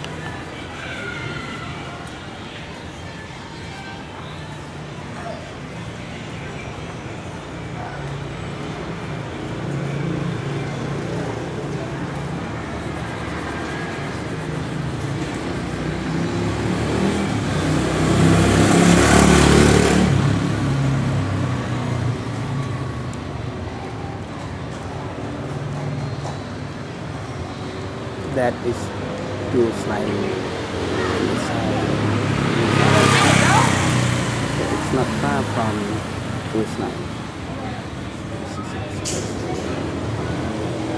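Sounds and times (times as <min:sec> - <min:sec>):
street traffic engines: 0:00.0 - 0:40.9
vehicle passing close by: 0:12.6 - 0:22.2, 0:28.6 - 0:40.9.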